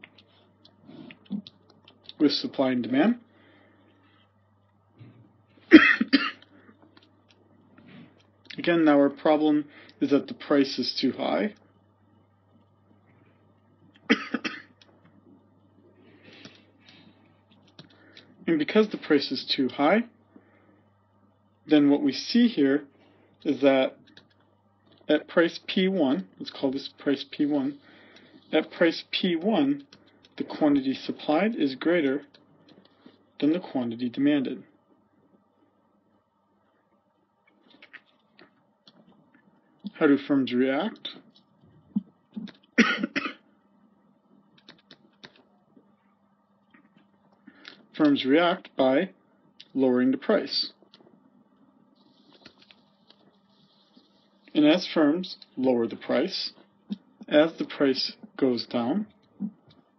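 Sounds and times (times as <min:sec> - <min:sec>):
person coughing: 0:05.7 - 0:06.5, 0:14.1 - 0:14.8, 0:42.8 - 0:43.4.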